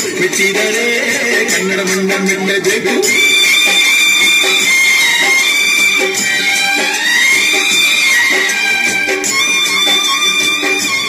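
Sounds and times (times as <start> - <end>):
instrumental film song: 0.0 - 11.0.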